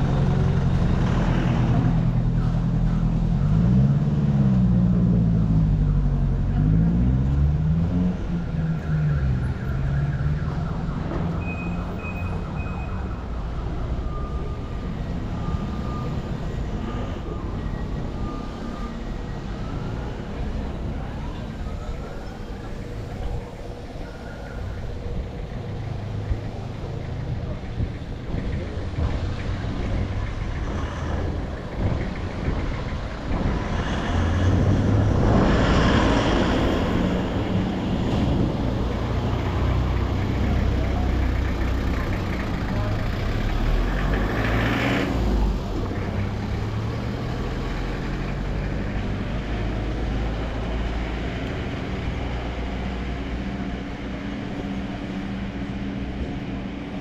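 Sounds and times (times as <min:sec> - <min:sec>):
car and truck engines: 0:00.0 - 0:57.0
vehicles driving past: 0:00.0 - 0:57.0.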